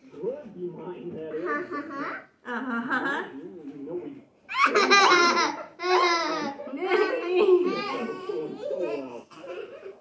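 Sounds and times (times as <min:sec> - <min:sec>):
high-pitched laughter: 0:04.5 - 0:06.5.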